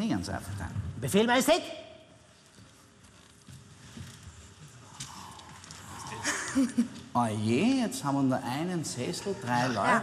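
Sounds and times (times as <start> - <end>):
footsteps and shuffling on stage: 2.2 - 6.0.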